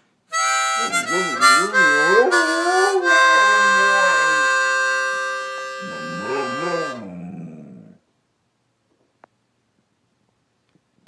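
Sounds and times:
harmonica chord: 0:00.3 - 0:07.0
husky howling low: 0:05.8 - 0:08.0.

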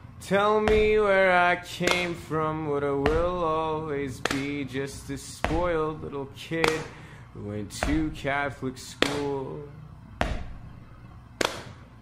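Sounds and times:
faint low backing music: 0:00.0 - 0:12.0.

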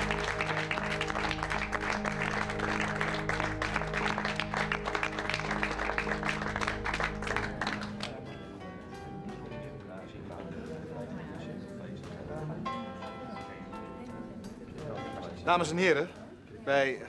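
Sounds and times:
crowd clapping: 0:00.0 - 0:08.4
music with low sustained chords: 0:00.0 - 0:15.5.

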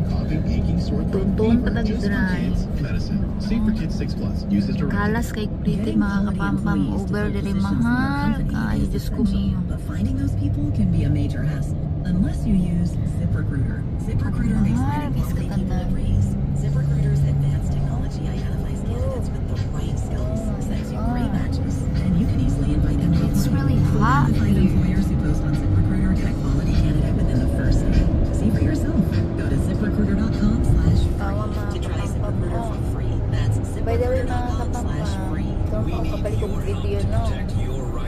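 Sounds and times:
car radio talk and music: 0:00.0 - 0:38.0
car road and engine rumble: 0:00.0 - 0:38.0.

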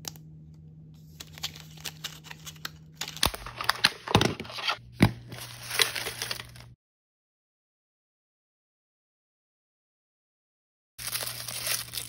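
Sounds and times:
packaging tearing and crinkling: 0:01.2 - 0:06.8, 0:11.0 - 0:12.0.

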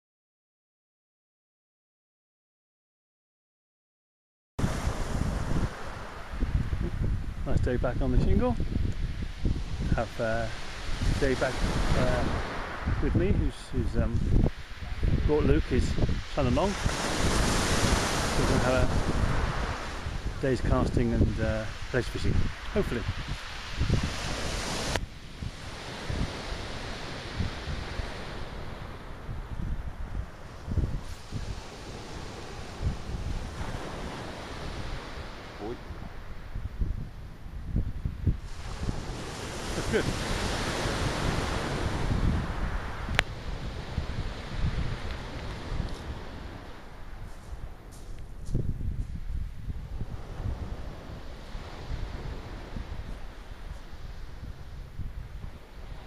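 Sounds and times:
wind buffeting microphone: 0:04.6 - 0:56.0.

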